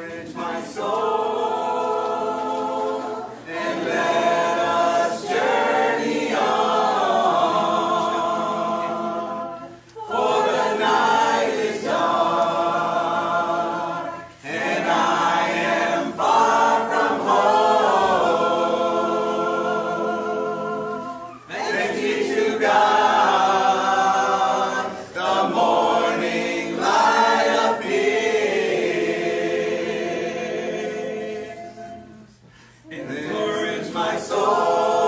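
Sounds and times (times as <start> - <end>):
congregation singing a hymn: 0.0 - 35.0.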